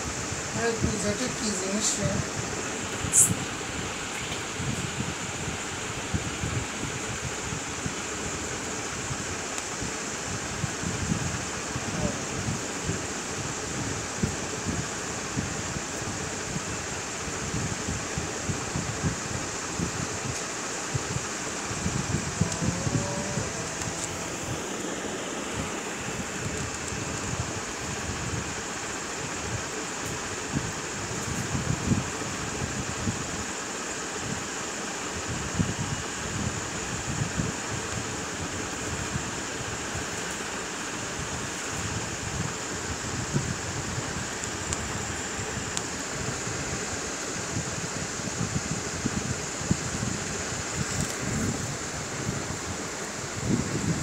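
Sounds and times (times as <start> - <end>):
steady background hiss: 0.0 - 54.0.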